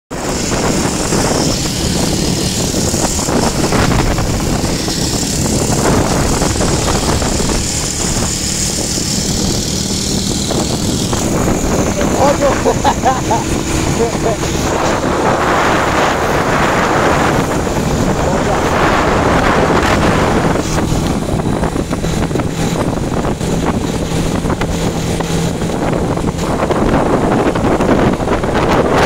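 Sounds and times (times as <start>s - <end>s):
motorcycle engine running: 0.1s - 29.0s
wind rush on microphone: 0.1s - 29.0s
person calling out: 11.8s - 14.6s.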